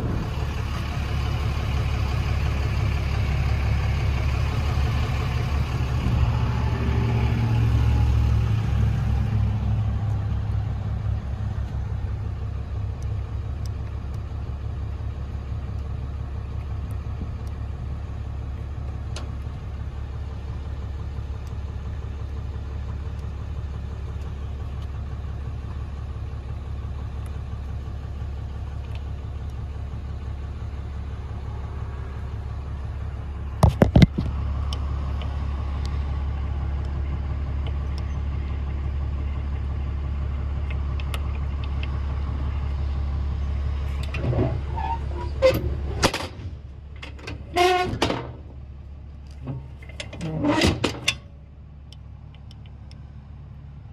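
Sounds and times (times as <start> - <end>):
diesel engine idling: 0.0 - 53.9.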